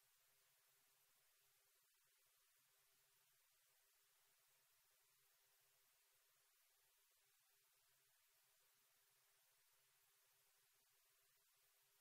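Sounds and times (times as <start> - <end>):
faint broadcast hiss: 0.0 - 12.0.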